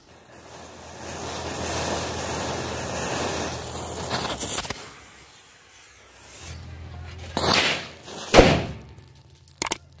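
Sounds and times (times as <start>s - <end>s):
firecracker hissing burst: 0.0s - 9.6s
firecracker bang: 7.2s - 9.1s.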